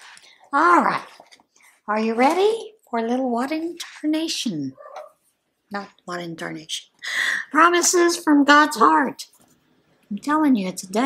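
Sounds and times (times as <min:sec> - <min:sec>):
woman speaking: 0:00.5 - 0:04.8, 0:05.7 - 0:09.4, 0:10.1 - 0:11.0.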